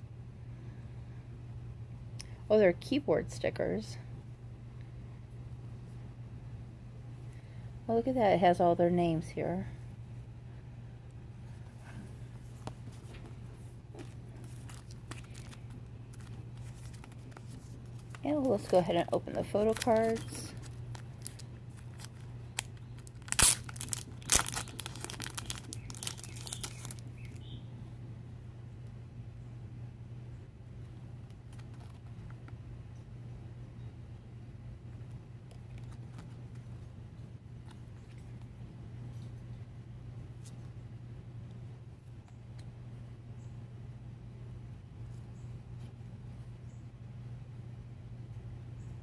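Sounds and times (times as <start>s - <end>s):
low hum: 0.0s - 49.0s
plastic wrapping torn and crinkled: 13.9s - 18.8s, 19.4s - 27.4s
sharp plastic cracks: 19.6s - 27.4s.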